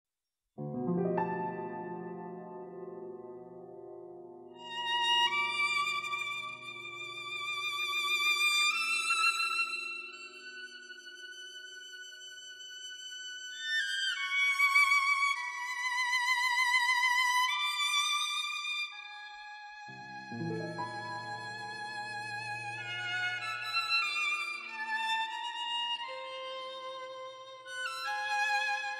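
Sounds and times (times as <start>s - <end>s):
violins playing slow melody: 19.9s - 27.2s
higher violin line: 19.9s - 28.9s.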